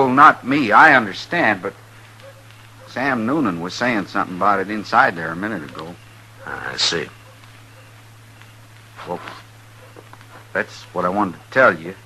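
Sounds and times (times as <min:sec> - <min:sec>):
man speaking: 0:00.0 - 0:01.8, 0:02.9 - 0:07.2, 0:09.0 - 0:09.4, 0:10.6 - 0:12.0
low hum: 0:00.4 - 0:12.0.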